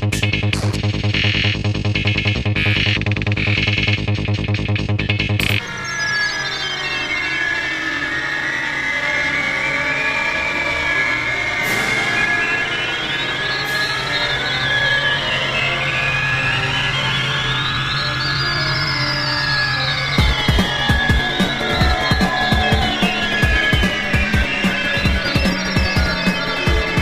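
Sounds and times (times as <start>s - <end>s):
steady low drone: 0.0s - 27.0s
gliding synth tones: 5.6s - 27.0s.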